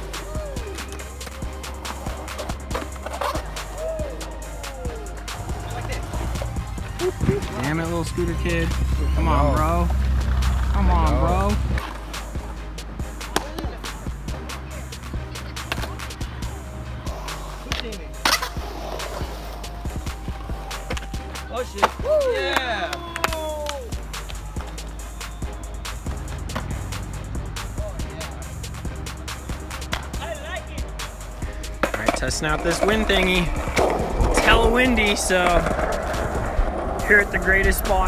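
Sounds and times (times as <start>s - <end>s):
background music with bass line: 0.0s - 38.0s
skateboard wheels rolling on concrete: 0.0s - 38.0s
skateboard clacks: 15.2s - 16.2s, 17.2s - 19.4s, 21.8s - 24.4s, 26.2s - 27.1s, 31.8s - 38.0s.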